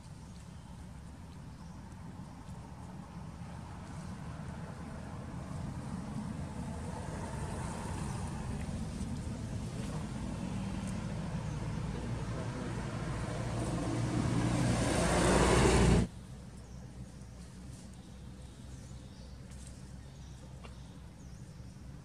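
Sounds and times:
motor vehicle approaching: 0:00.6 - 0:22.0.

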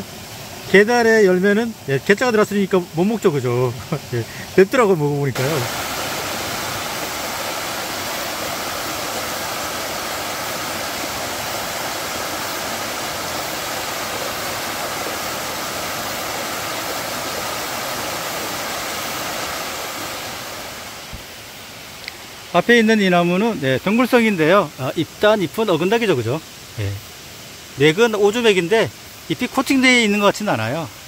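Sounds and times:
stream rushing over rocks: 0:00.0 - 0:31.0.

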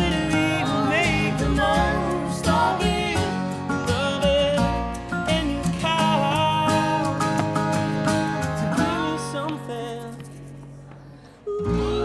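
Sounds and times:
upright double bass: 0:00.0 - 0:10.1
strummed acoustic guitar: 0:00.0 - 0:12.0.

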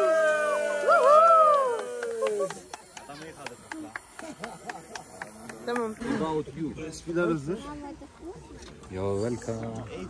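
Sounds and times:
people whooping and cheering: 0:00.0 - 0:03.3.

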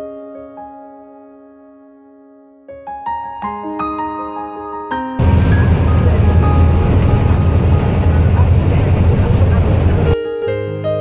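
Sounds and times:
tyres rumbling on wet road: 0:05.2 - 0:10.2.

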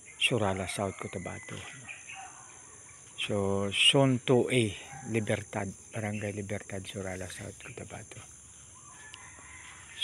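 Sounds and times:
rooster crowing: 0:00.7 - 0:02.8, 0:04.7 - 0:05.6, 0:08.8 - 0:10.0.

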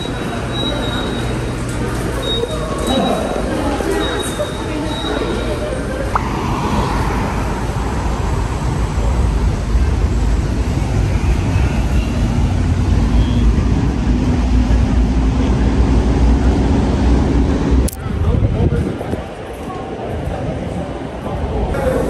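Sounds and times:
road traffic rumble: 0:00.0 - 0:22.0
low engine drone rising in pitch: 0:05.9 - 0:10.7.

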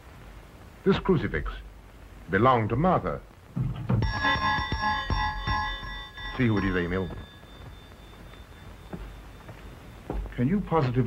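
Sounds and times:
film soundtrack hiss: 0:00.0 - 0:11.0.

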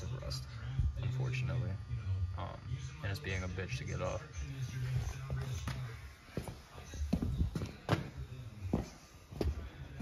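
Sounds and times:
faint background talk: 0:00.0 - 0:10.0.

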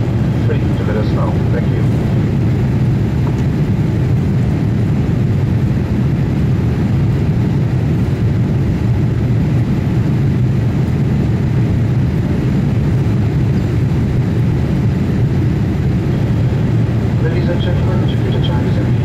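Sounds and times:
airliner cabin engine and airflow noise: 0:00.0 - 0:19.0.

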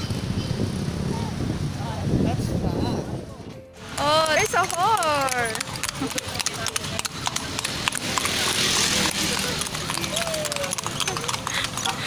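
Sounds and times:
hooves clip-clopping on asphalt: 0:03.8 - 0:12.0.

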